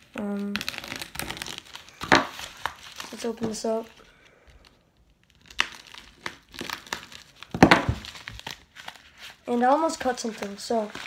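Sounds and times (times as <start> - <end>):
plastic ripping: 0.0 - 11.0
plastic bag crinkling: 0.2 - 11.0.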